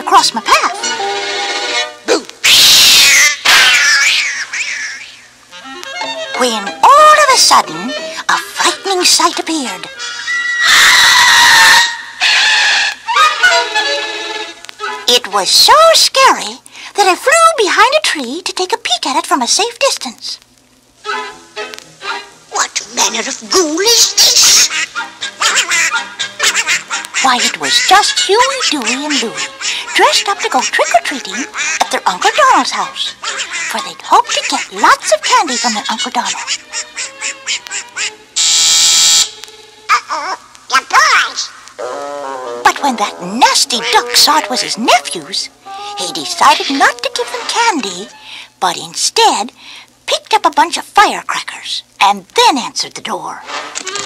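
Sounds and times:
sustained musical notes: 5.5 - 10.7, 42.5 - 48.3.

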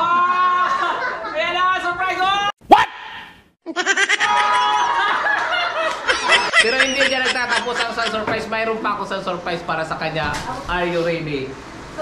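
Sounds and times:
woman laughing: 3.7 - 8.3
people laughing: 3.7 - 8.5
people talking: 6.3 - 11.5.

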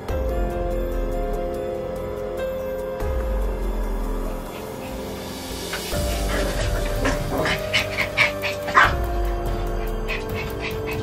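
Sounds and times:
music of long held notes: 0.0 - 11.0
dog barking and yipping: 4.5 - 11.0.

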